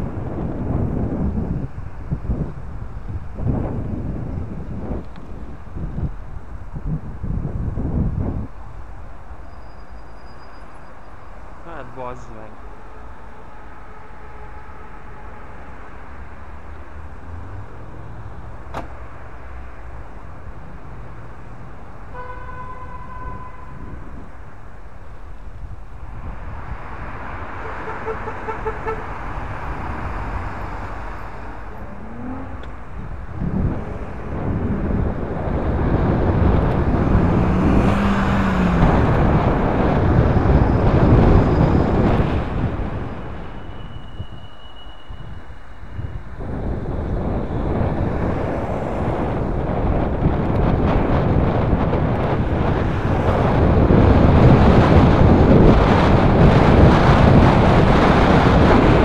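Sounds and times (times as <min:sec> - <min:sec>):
wind noise on microphone: 0:00.0 - 0:11.4, 0:13.0 - 0:59.0
passing road traffic: 0:00.0 - 0:59.0.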